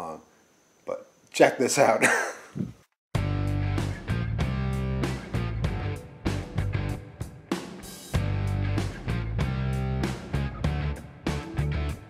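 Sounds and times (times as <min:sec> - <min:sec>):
man laughing: 0:02.0 - 0:02.8
guitar background music: 0:03.2 - 0:12.0.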